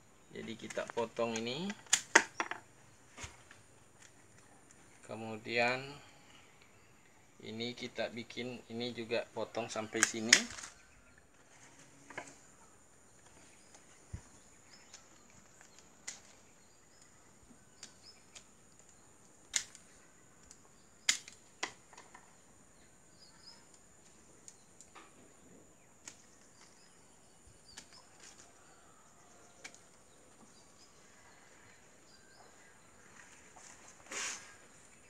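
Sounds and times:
faint bird chirps: 2.4 - 35.0
scissors snipping branches: 14.9 - 17.1, 17.7 - 21.8.

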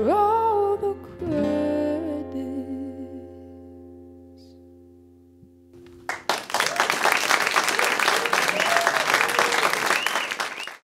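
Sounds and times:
audience applauding: 6.0 - 10.9.

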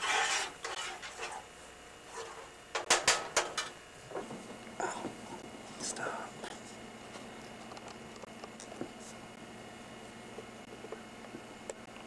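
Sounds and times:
kitchen utensils clacking: 2.8 - 3.8.

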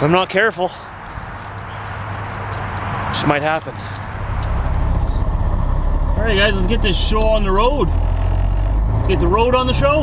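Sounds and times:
diesel truck engine running: 1.0 - 10.0.

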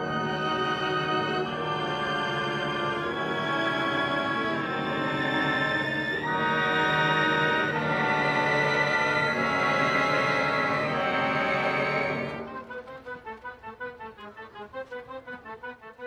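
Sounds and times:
orchestra playing sustained chords: 0.0 - 15.6.

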